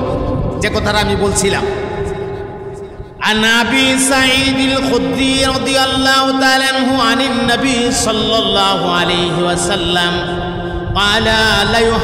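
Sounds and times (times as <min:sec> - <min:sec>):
man chanting a sermon: 0:00.0 - 0:12.0.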